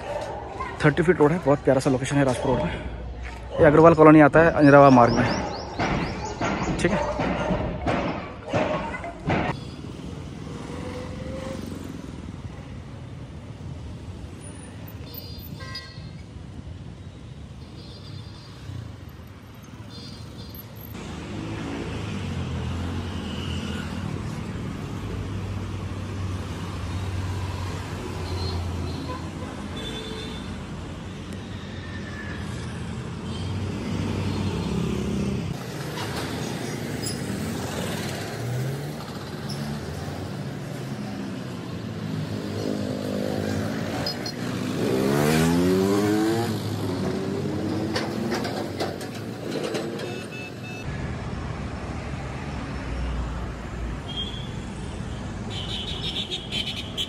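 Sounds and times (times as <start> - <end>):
road traffic passing: 0.0 - 57.0
vehicle accelerating past: 42.4 - 48.0.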